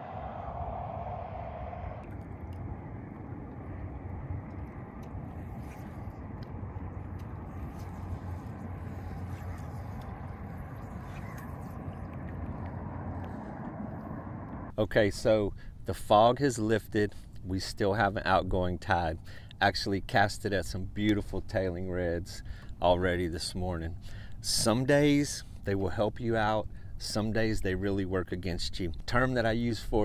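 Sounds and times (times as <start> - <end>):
low rumble: 0.0 - 15.9
paddles in water: 2.0 - 14.7.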